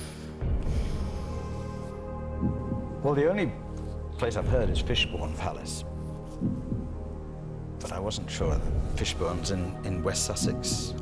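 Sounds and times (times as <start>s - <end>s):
tense drone music with pulse: 0.0s - 11.0s.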